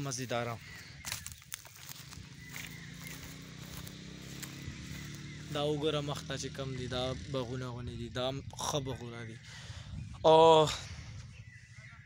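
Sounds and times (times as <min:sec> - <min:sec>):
faint low engine hum: 0:00.0 - 0:12.0.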